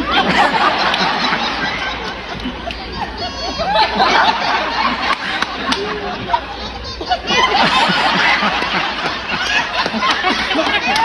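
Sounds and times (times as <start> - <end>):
audience laughing: 0.0 - 11.0.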